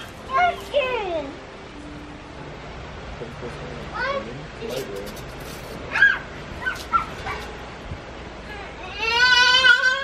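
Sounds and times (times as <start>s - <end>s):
children crying out: 8.4s - 10.0s
children squealing: 8.5s - 10.0s.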